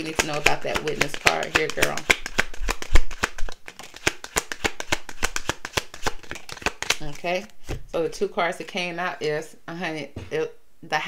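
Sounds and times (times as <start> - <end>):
cards being shuffled: 0.0 - 8.0.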